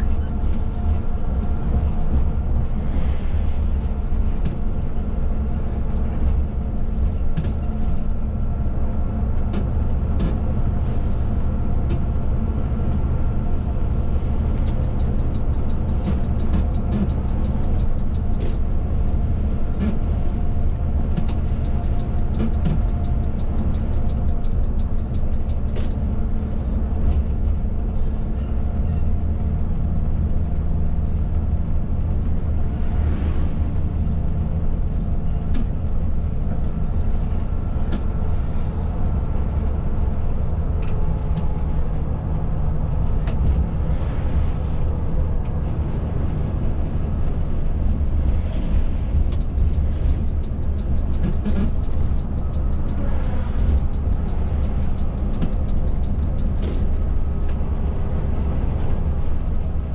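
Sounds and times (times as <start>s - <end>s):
diesel engine running: 0.0s - 59.9s
road noise: 0.0s - 59.9s.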